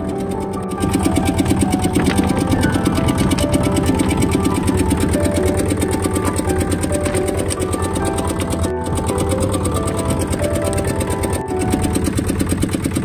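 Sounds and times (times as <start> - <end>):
background music with held tones: 0.0 - 13.0
boat engine running: 0.0 - 13.0.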